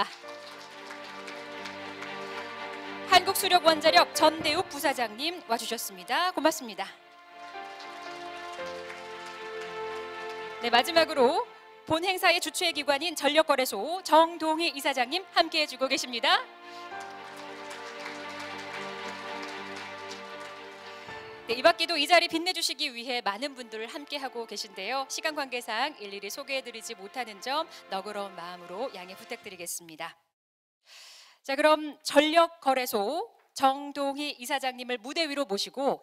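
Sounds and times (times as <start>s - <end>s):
audience applause: 0.0s - 4.6s, 7.4s - 11.2s, 16.7s - 21.5s
background music chords: 0.0s - 22.5s, 23.6s - 29.6s.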